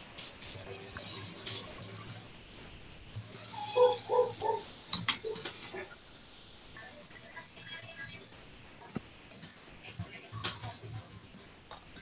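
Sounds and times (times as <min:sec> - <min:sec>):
animal high-pitched calls: 0:03.4 - 0:05.5.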